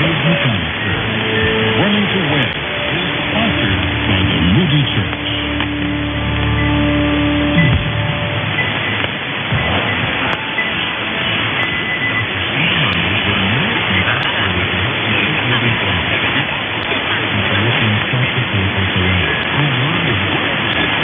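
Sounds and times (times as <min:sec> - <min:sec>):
faint radio music: 0:00.0 - 0:21.0
low hum-like tone: 0:00.0 - 0:21.0
radio static and hiss: 0:00.0 - 0:21.0.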